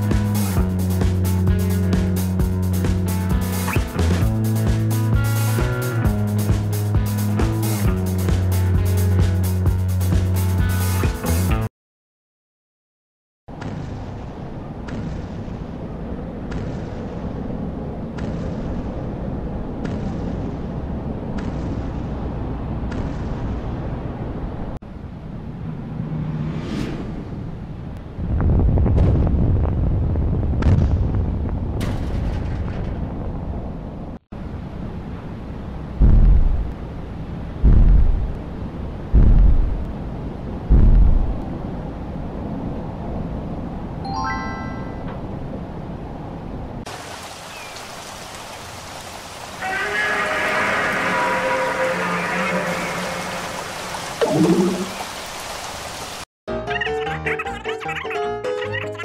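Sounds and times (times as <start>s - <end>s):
low rumbling with sharp cracks: 27.0s - 34.2s, 35.9s - 36.9s, 37.5s - 41.8s
heavy booms: 36.0s - 36.7s, 37.6s - 38.4s, 39.1s - 39.9s, 40.6s - 41.4s.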